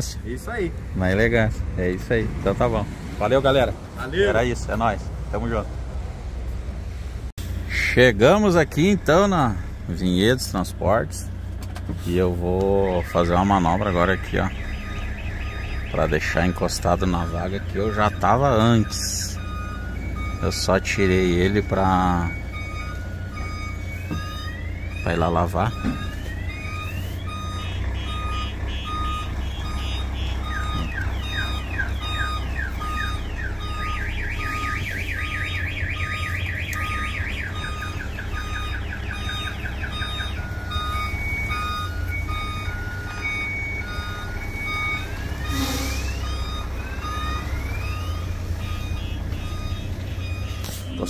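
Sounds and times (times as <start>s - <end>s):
diesel engine running: 0.0s - 51.0s
reversing alarm beeping: 12.1s - 51.0s
rising electronic chirps: 12.7s - 51.0s.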